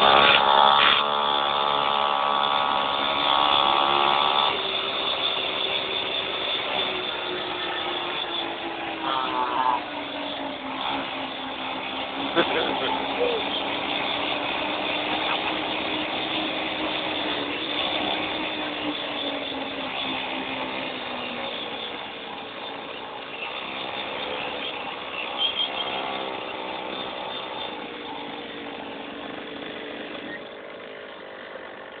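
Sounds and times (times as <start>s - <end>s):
small motorbike engine running: 0.0s - 32.0s.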